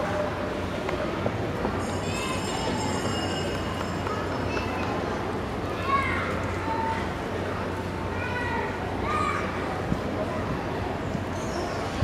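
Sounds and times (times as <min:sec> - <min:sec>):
ballpark background hum: 0:00.0 - 0:12.0.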